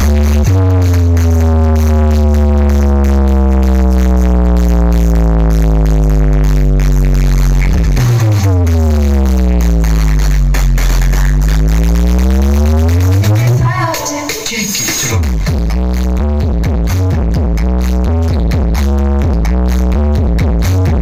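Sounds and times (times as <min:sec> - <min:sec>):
deep electronic bass: 0:00.0 - 0:14.1, 0:14.8 - 0:21.0.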